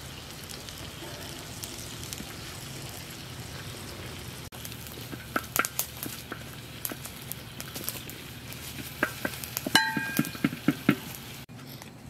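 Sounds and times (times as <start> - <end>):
metal spoon tapping metal griddle: 9.0 - 11.1.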